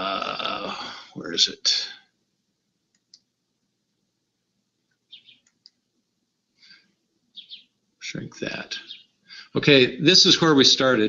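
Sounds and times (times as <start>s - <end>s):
faint high-pitched clicks: 2.9s - 3.3s, 4.9s - 5.8s.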